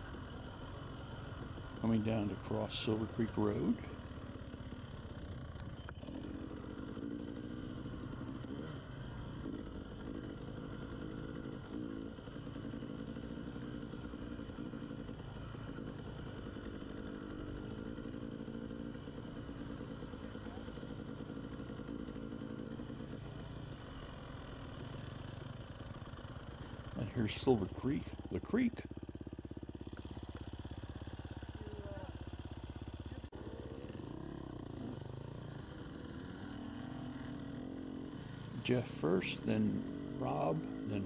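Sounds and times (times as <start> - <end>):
dirt bike engine running: 0.0 - 41.0.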